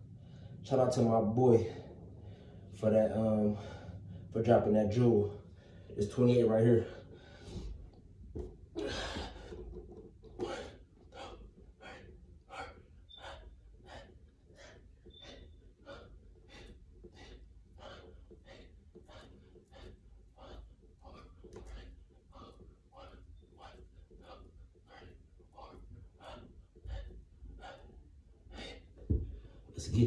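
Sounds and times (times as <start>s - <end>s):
man breathing hard rhythmically: 0.0s - 30.0s.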